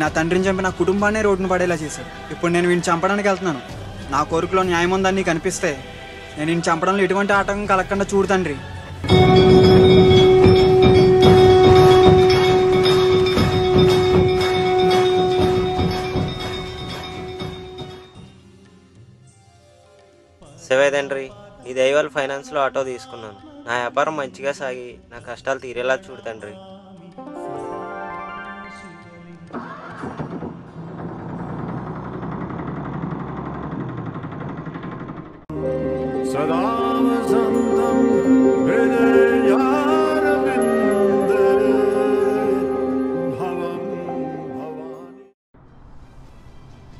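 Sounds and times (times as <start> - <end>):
temple bell ringing: 9.0 - 18.4, 35.5 - 43.4
auto-rickshaw engine chugging: 30.7 - 35.4.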